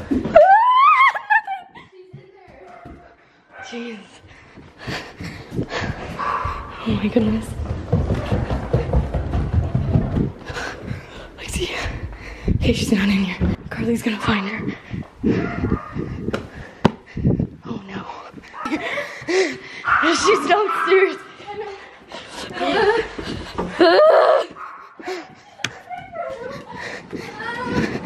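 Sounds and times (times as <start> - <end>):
person breathing: 3.2 - 6.9, 10.4 - 12.7, 14.6 - 20.0, 24.8 - 28.0.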